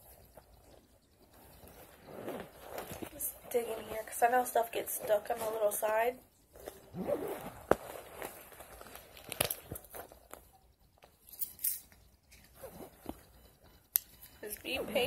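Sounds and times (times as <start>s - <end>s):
items rustling in a purse: 0.0s - 13.4s.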